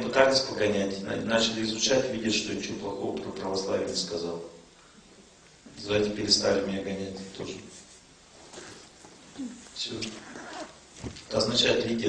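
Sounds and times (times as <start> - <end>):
man speaking into a microphone: 0.0 - 4.6, 5.7 - 7.7, 11.3 - 12.0.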